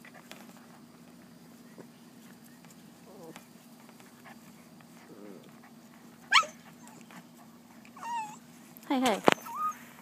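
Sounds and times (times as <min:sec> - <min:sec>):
faint low growl: 0:03.0 - 0:03.4, 0:05.0 - 0:05.7
puppy yelping: 0:06.3 - 0:07.2, 0:08.0 - 0:08.5, 0:09.3 - 0:09.9.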